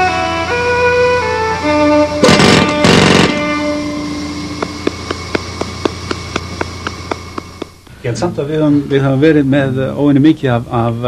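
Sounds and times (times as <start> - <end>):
violin holding notes: 0.0 - 7.8
loud noisy blasts: 0.0 - 7.9
quick even ticking: 4.5 - 7.8.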